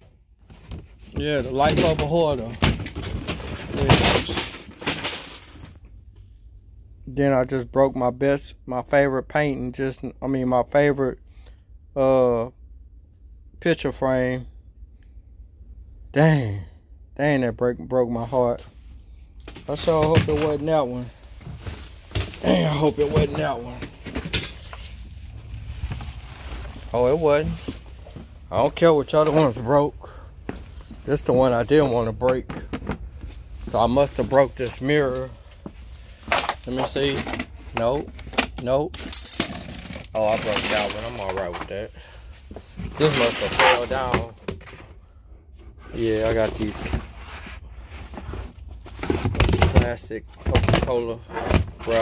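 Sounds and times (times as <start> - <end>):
knocks and shuffles of moving things: 0.0 - 6.4, 18.1 - 52.0
items rustling in plastic tote: 19.6 - 29.7, 46.0 - 52.0.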